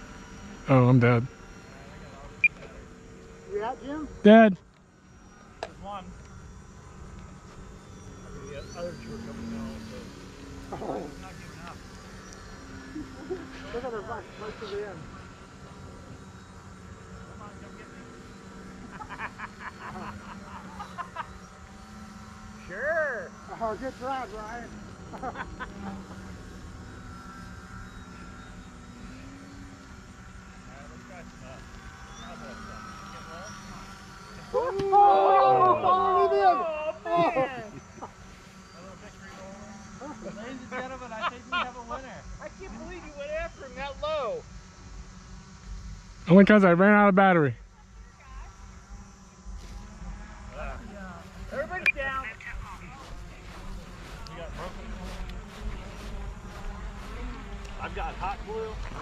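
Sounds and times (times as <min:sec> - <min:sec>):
model airplane motors whining: 0:00.0 - 0:59.0
loud talking: 0:34.5 - 0:37.8.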